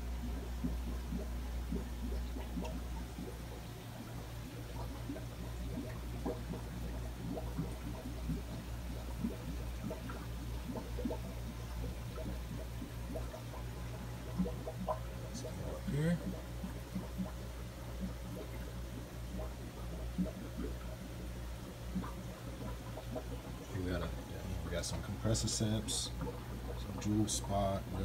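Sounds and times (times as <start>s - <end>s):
aquarium filters bubbling: 0.0s - 28.0s
low steady hum: 0.0s - 28.0s.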